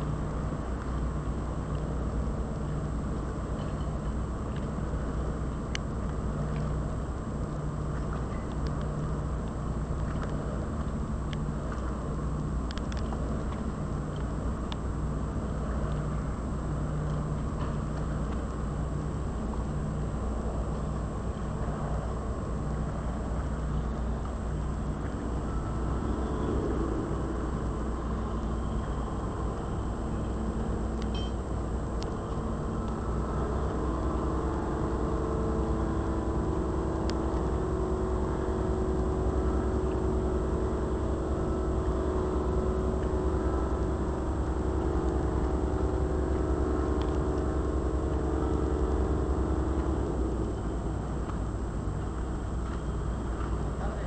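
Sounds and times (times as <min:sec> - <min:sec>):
boat engine droning: 0:00.0 - 0:54.0
higher even hum: 0:00.0 - 0:54.0.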